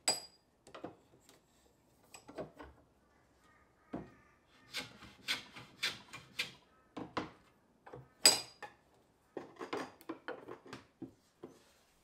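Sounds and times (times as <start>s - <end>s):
hand tool rasping on wood: 4.7s - 6.6s.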